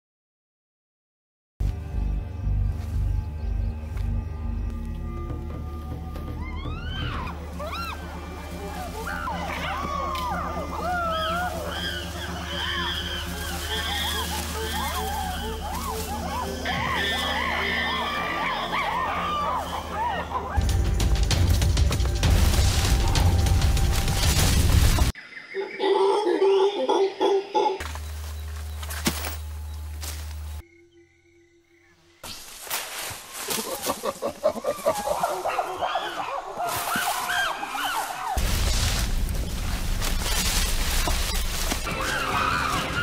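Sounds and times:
low music drone: 1.6 - 25.2, 38.4 - 43.0
chimpanzees hooting and screaming: 5.5 - 20.6, 25.6 - 27.8, 33.4 - 38.4, 40.4 - 43.0.

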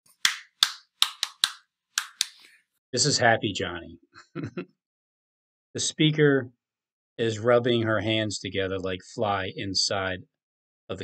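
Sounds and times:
man clapping hands: 0.2 - 2.4.

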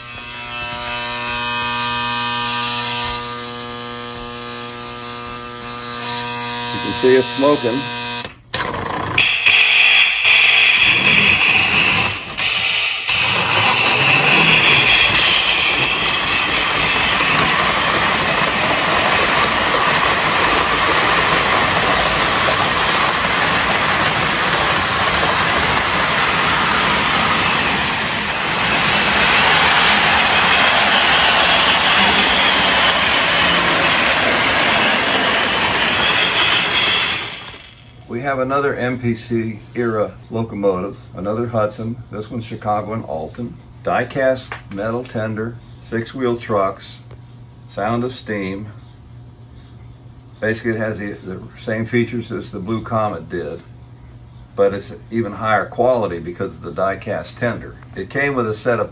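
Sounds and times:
model train motor and wheels: 0.0 - 38.4
model train steam hiss: 9.2 - 37.9.

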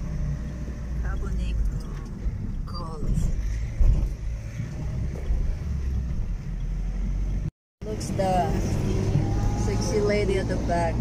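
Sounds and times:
vehicle engine and tyre rumble: 0.0 - 11.0.

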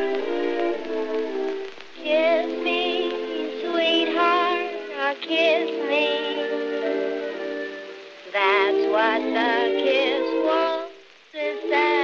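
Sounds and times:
dance orchestra playing a waltz: 0.0 - 12.0.

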